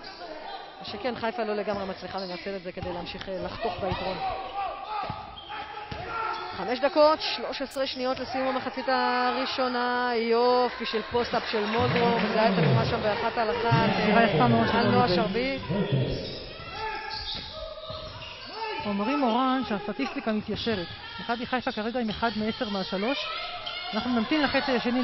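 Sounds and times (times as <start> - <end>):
faint voices: 11.4 - 18.9.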